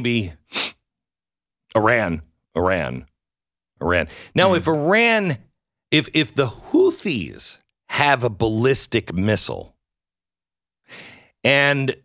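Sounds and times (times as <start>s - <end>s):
man speaking: 0.0s - 0.4s, 1.7s - 3.1s, 3.8s - 9.7s, 11.4s - 12.0s
breath into microphone: 4.1s - 4.4s, 10.9s - 11.4s.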